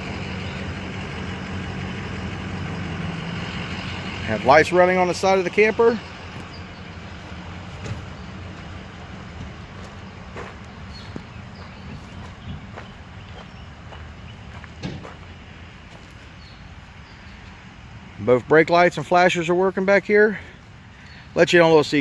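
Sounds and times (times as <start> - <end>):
truck engine idling: 0.0 - 22.0
footsteps: 7.2 - 16.4.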